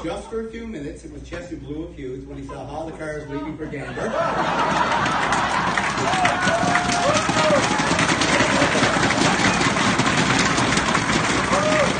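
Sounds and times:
crowd applauding: 4.2 - 11.9.

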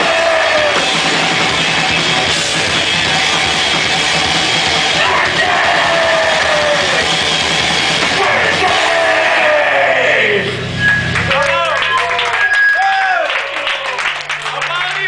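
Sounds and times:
punk band playing live: 0.0 - 11.3.

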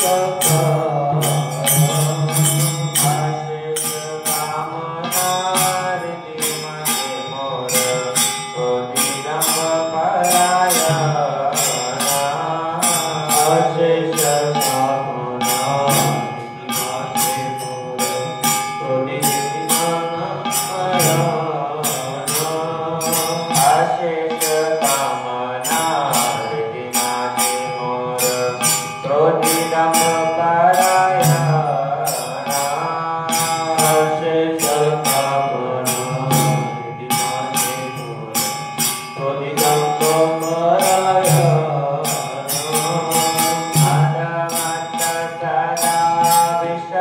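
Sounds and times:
person singing a slow chant: 0.0 - 38.5
jingling metallic percussion: 0.0 - 47.0.

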